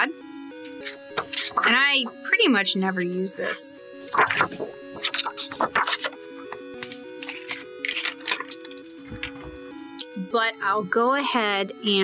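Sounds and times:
background music: 0.0s - 12.0s
paper pad rustling and tapping: 0.8s - 2.4s, 4.0s - 9.7s.

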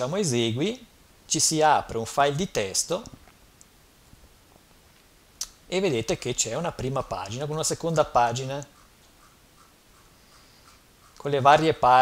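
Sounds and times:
mouse scroll wheel ticking: 8.6s - 11.3s.

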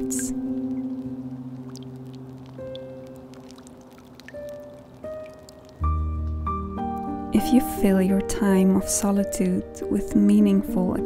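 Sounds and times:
soft ambient music: 0.0s - 11.0s.

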